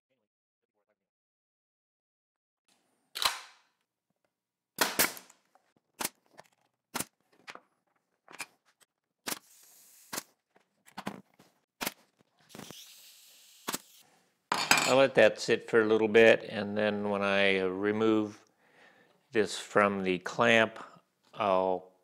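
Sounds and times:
nail gun firing: 4.8 - 5.3.

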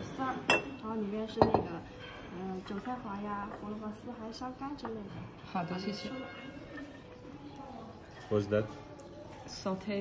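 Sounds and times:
porcelain dishes clinking: 0.0 - 3.8.

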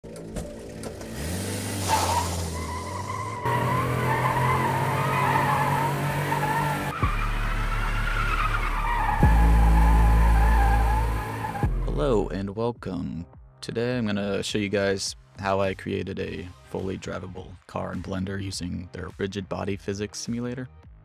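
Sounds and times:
squealing tyres: 0.6 - 12.0.

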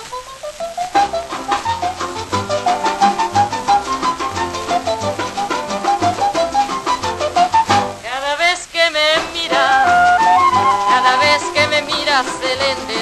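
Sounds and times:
latin band on old record: 0.0 - 13.0
solo trumpet fast runs: 9.6 - 11.7.

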